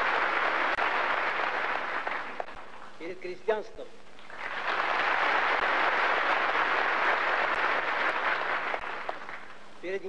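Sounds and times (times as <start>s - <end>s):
audience applauding: 0.0s - 2.9s, 4.2s - 9.6s.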